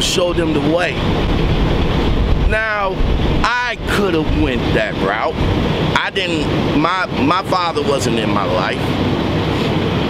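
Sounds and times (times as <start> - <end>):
man speaking: 0.0 - 1.0, 2.4 - 8.9
steady low rumble: 0.0 - 10.0.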